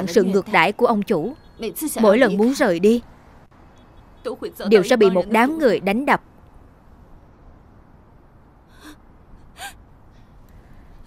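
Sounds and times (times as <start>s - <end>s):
person sharply inhaling: 8.7s - 9.0s.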